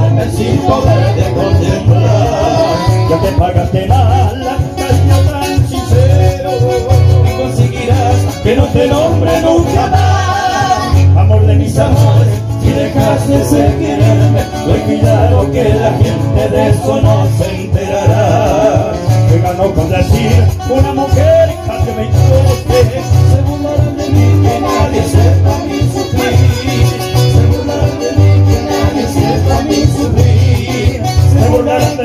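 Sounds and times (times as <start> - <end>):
acoustic guitars playing: 0.0 - 32.0
steady bass line: 0.0 - 32.0.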